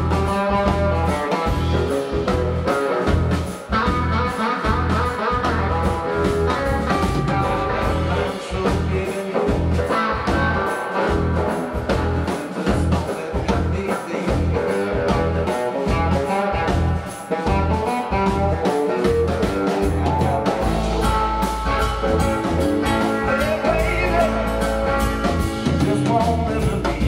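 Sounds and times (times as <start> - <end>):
bass guitar: 0.0 - 27.0
drum kit beat: 0.0 - 27.0
electric guitar: 0.0 - 27.0
man singing: 7.8 - 16.6, 22.9 - 27.0.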